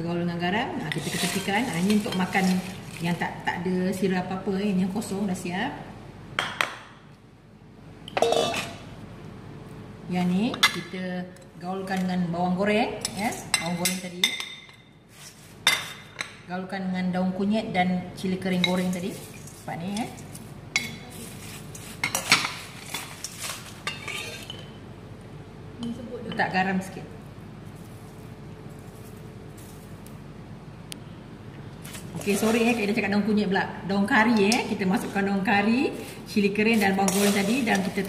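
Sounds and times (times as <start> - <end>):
light clinks of kitchenware: 8.1 - 8.8
metal bowl clattering: 8.2 - 8.8
metal spoon scraping steel bowl: 23.2 - 24.6, 36.8 - 38.0.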